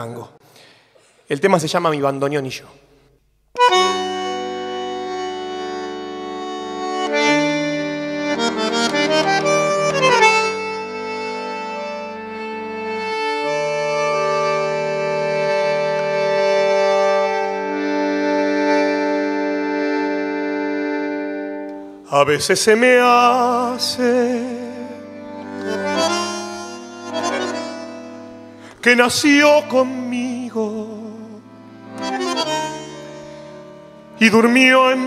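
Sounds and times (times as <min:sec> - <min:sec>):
bandoneon playing tango chords: 0:03.3 - 0:35.0.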